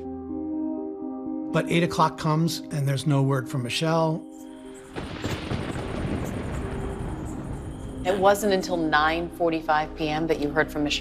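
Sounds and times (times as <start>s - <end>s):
low thunder rumble: 5.0s - 9.1s.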